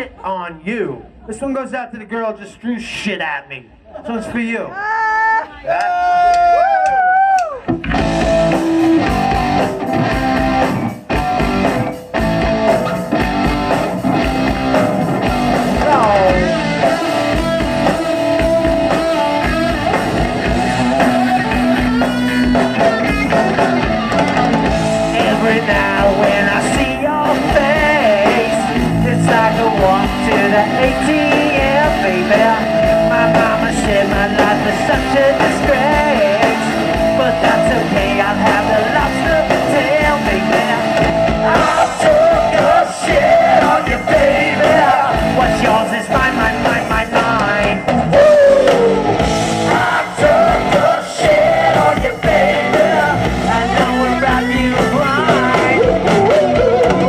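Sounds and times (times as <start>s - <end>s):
electric guitar: 5.5s - 57.0s
bass guitar: 5.9s - 57.0s
person singing: 15.7s - 19.5s, 20.8s - 57.0s.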